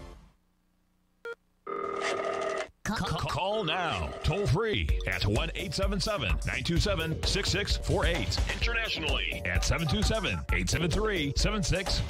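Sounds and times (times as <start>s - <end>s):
phone ringtone ringing: 1.7s - 2.7s, 3.7s - 4.5s.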